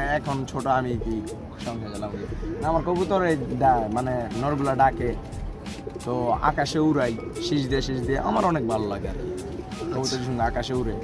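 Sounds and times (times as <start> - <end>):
man talking: 0.0 - 5.2, 6.0 - 11.0
pigeons cooing: 0.0 - 11.0.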